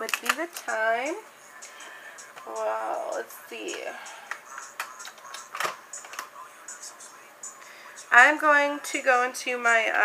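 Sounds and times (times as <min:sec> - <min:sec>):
makeup cases clicking and clattering: 0:00.0 - 0:00.6, 0:04.3 - 0:06.3
faint background music: 0:00.0 - 0:10.0.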